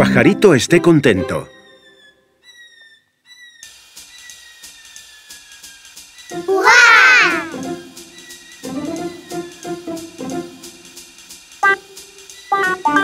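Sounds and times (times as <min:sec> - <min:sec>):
cartoon background music: 0:00.0 - 0:02.6, 0:06.2 - 0:11.0, 0:11.6 - 0:13.0
cartoon character warbling voice: 0:06.5 - 0:07.6.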